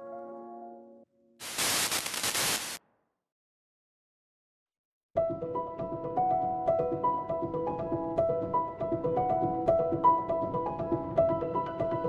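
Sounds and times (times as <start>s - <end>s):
static-like hiss: 1.4s - 2.8s.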